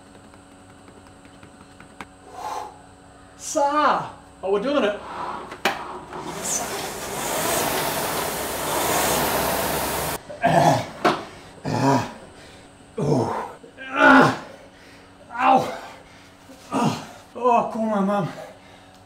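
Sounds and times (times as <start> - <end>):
rowing machine flywheel fan rushing: 4.4 - 17.0
man groaning and gasping: 10.4 - 10.9, 11.6 - 12.2, 13.0 - 14.6, 15.5 - 17.4.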